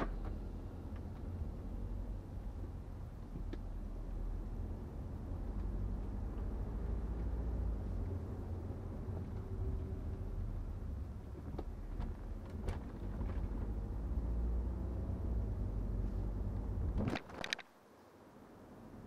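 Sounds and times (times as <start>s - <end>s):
car engine and road rumble: 0.0s - 19.0s.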